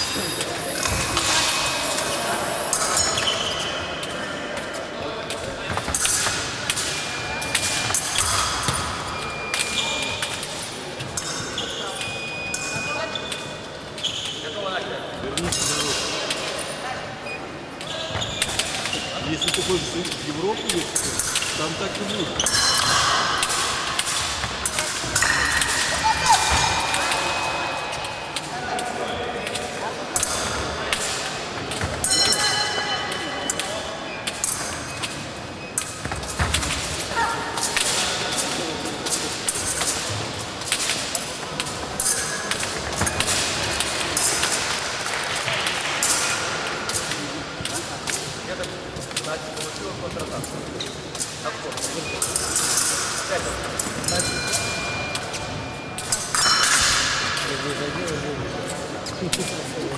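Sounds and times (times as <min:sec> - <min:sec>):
voices echoing in hall: 0:00.0 - 0:59.9
fencing blades clicking: 0:20.8 - 0:26.0.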